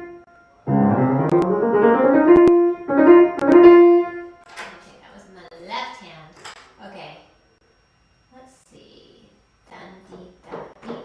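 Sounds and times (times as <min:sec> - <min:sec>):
grand piano playing: 0:00.0 - 0:04.4.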